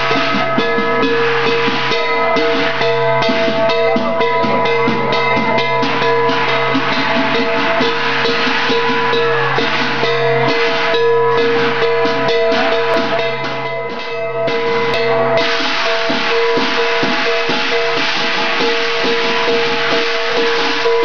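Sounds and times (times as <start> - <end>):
cymbals crashing: 0.0 - 21.0
drum beats: 0.0 - 21.0
steady ringing tones: 0.0 - 21.0.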